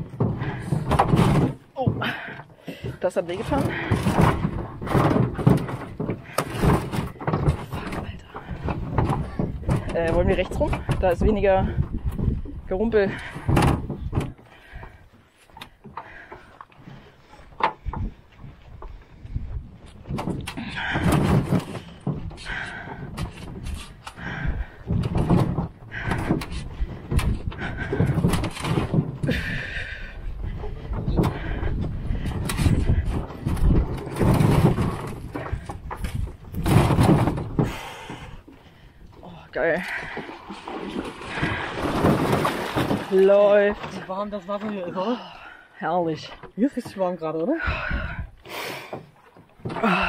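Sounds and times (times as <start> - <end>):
canoe hull rattling on cart: 0.0 - 50.0.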